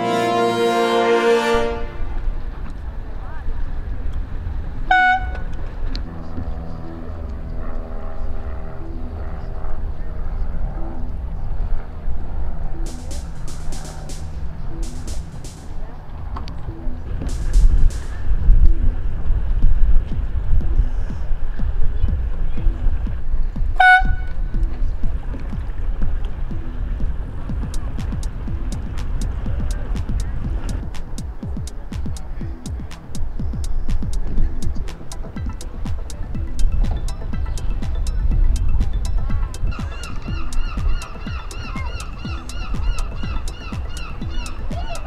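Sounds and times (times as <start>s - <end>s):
short horn blast: 0.0s - 2.4s, 4.9s - 5.5s, 23.8s - 24.4s
wind rumble on microphone: 1.6s - 45.0s
background music with repeating beat: 12.8s - 15.9s, 16.8s - 19.0s, 19.6s - 45.0s.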